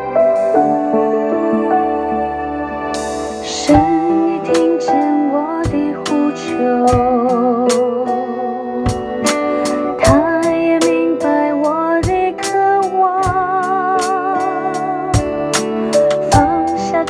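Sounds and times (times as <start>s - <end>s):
recorded worship song: 0.0s - 17.0s
drum and cymbal hits: 3.0s - 5.0s, 5.6s - 8.0s, 8.8s - 11.0s, 14.8s - 16.9s.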